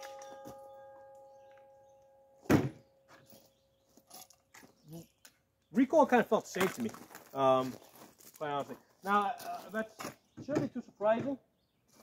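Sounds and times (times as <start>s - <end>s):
metallic ring of steel target: 0.0s - 3.2s.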